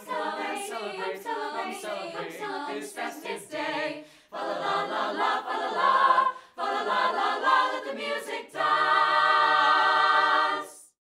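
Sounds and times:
choir of young voices singing: 0.0 - 11.0
singers breathing: 3.9 - 4.4, 6.2 - 6.6.

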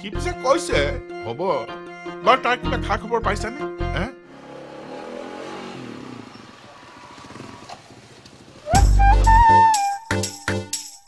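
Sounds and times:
motorcycle engine running: 4.3 - 9.0
loud music with flute melody: 8.7 - 10.6.

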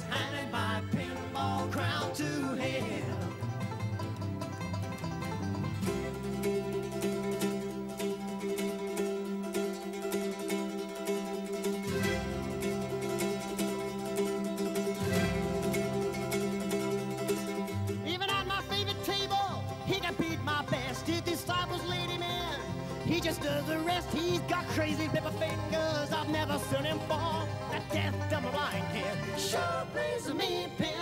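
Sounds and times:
acoustic guitar accompaniment: 0.0 - 31.0
mandolin solo: 0.0 - 31.0.

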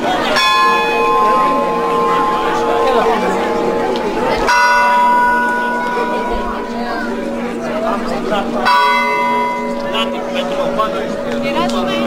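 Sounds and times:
church bell tolling: 0.0 - 12.0
crowd chatter: 0.0 - 12.0.

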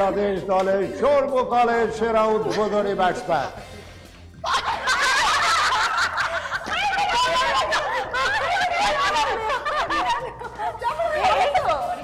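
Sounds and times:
women laughing: 2.6 - 12.0.

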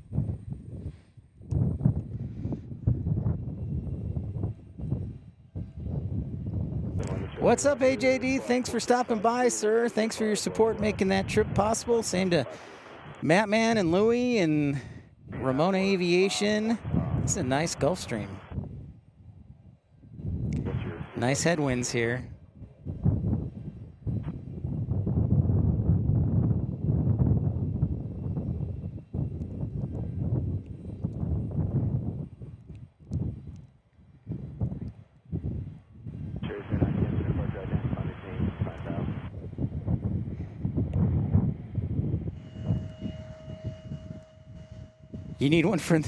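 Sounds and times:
wind on microphone: 0.0 - 9.0, 10.1 - 46.0
jet engines taking off: 6.8 - 18.6, 20.5 - 25.1, 36.4 - 46.0.

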